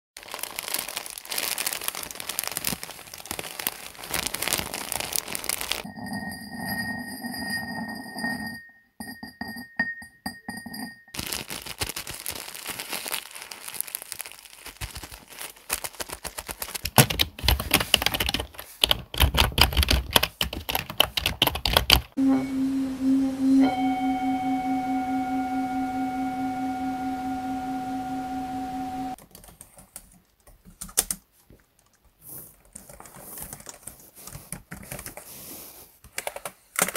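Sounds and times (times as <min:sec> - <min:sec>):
plastic bag crinkling: 0:00.2 - 0:05.9, 0:11.2 - 0:19.0
keyboard typing: 0:16.8 - 0:22.2, 0:29.2 - 0:31.2
steady pitched tone: 0:22.2 - 0:29.2.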